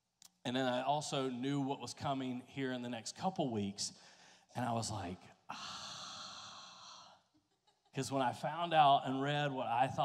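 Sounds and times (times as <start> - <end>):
man sighing into microphone: 5.5 - 7.3.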